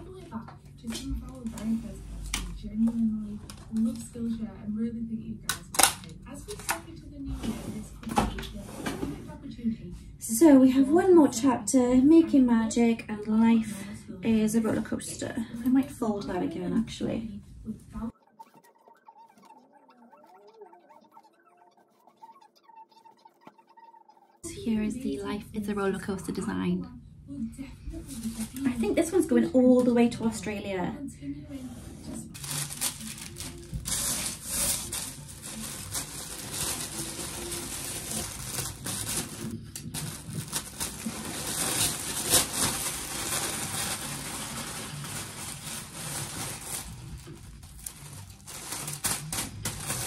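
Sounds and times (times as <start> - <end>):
t-shirt rustling: 31.7 - 50.0.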